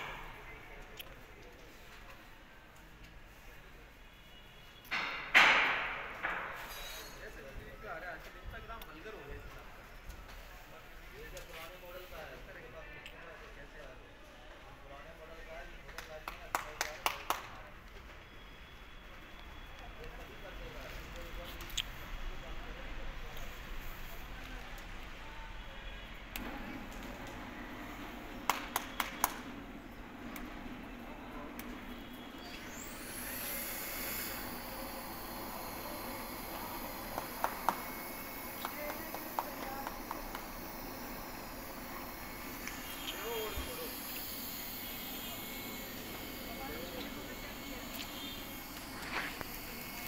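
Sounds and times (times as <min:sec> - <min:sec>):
band sealer whine and hum: 0:26.1 - 0:50.0.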